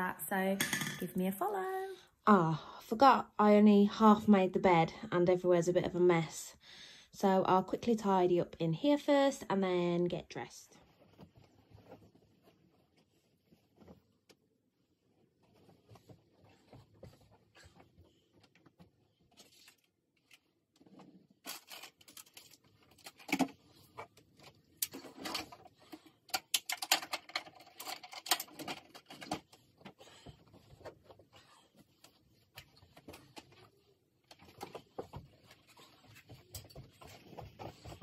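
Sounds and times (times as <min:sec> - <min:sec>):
bedding rustling: 0:10.8 - 0:19.7, 0:29.4 - 0:38.0.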